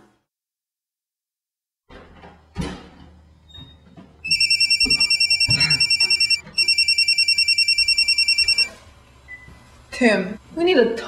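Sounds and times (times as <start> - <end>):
telephone ringing: 4.2 - 8.7.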